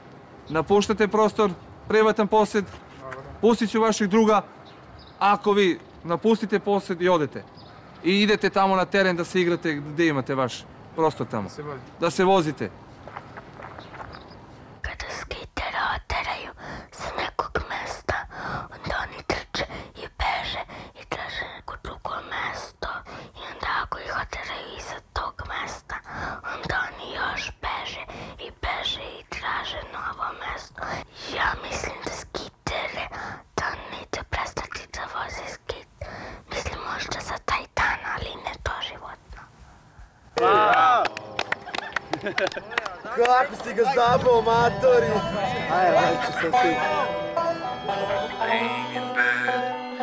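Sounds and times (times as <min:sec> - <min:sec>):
woman whispering narration: 0:14.8 - 0:39.5.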